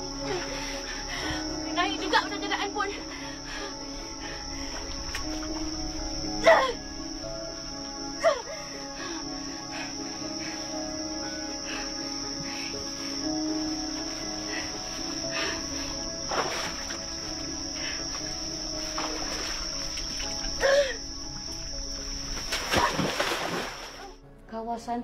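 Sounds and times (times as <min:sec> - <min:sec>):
crickets chirping: 0:00.0 - 0:25.0
low sustained music notes: 0:00.0 - 0:25.0.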